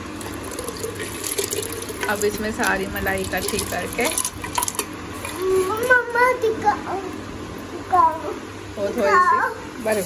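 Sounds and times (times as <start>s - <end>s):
water pouring and splashing: 0.0s - 5.9s.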